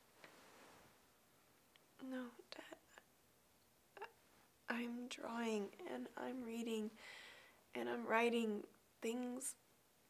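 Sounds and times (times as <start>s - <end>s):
soft breaths: 6.9s - 7.7s.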